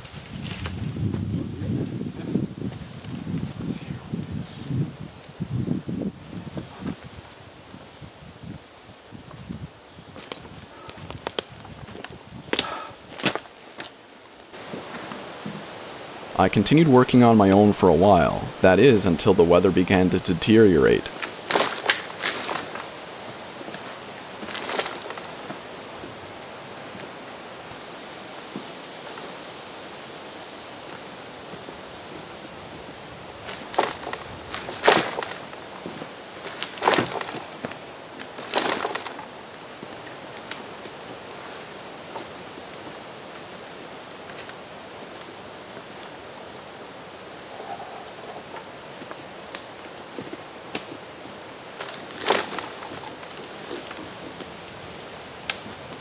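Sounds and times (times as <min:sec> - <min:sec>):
steady outdoor hiss: 0:00.0 - 0:56.0
knocks and rustles: 0:33.5 - 0:37.8, 0:38.4 - 0:39.3.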